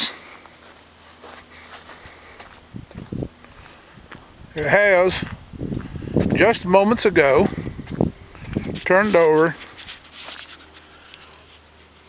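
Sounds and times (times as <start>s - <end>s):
faint outdoor hiss: 0.0s - 12.0s
footsteps on pavement: 0.2s - 11.6s.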